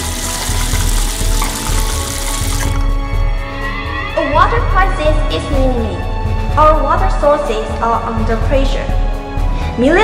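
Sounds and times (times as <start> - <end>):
running water from tap: 0.0 - 3.0.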